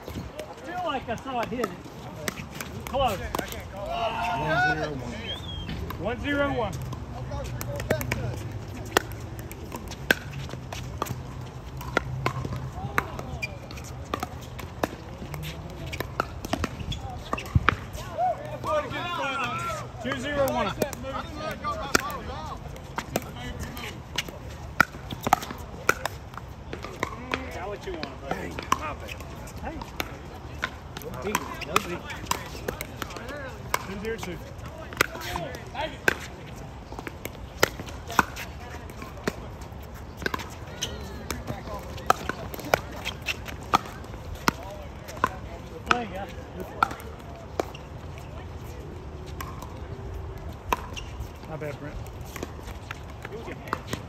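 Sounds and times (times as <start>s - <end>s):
paddles hitting plastic ball: 5.8s - 18.7s, 20.0s - 47.7s.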